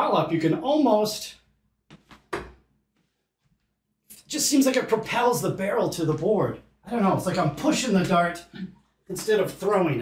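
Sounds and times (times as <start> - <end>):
dart hitting dartboard: 1.9 - 2.6.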